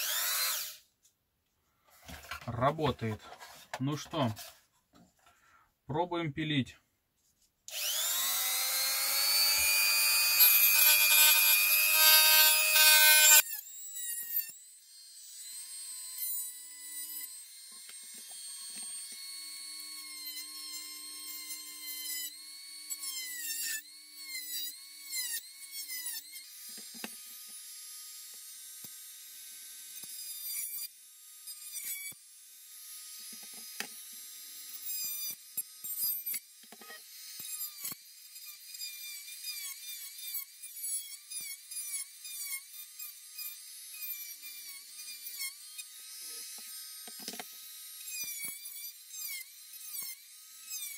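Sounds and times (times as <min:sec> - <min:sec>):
rotary tool whining: 0:00.0 - 0:00.9, 0:07.7 - 0:50.9
saw cutting plastic: 0:00.0 - 0:01.0, 0:01.9 - 0:05.4, 0:07.7 - 0:50.9.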